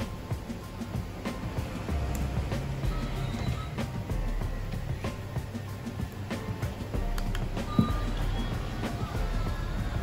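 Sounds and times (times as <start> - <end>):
music through portable speaker: 0.0 - 10.0.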